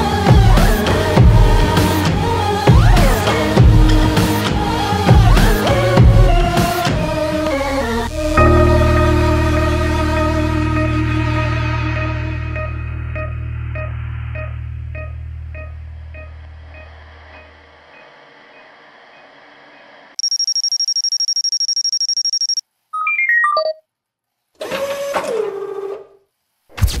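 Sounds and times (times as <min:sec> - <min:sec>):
music: 0:00.0 - 0:17.4
fast-trilling high beep: 0:20.2 - 0:23.8
short stepped electronic tones: 0:20.2 - 0:23.8.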